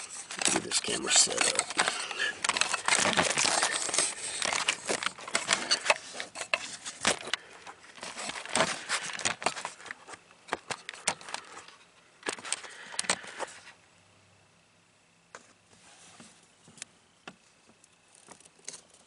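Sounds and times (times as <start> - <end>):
handling rustling and crackling: 0.0 - 13.8.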